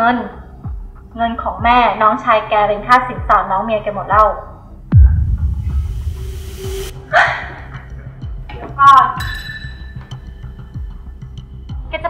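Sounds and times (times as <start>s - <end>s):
deep boom into low rumble: 4.9s - 7.0s.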